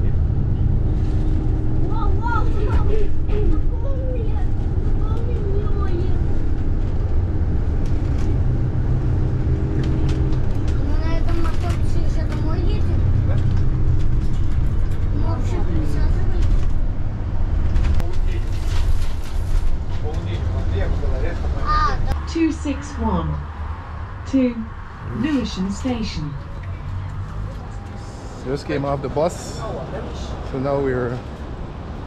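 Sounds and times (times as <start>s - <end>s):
bus drivetrain and road rumble: 0.0s - 32.0s.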